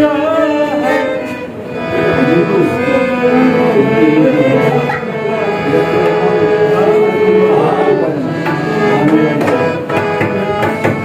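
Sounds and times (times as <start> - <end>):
man singing: 0.0 - 9.9
harmonium chords: 0.0 - 11.0
tabla: 8.4 - 11.0.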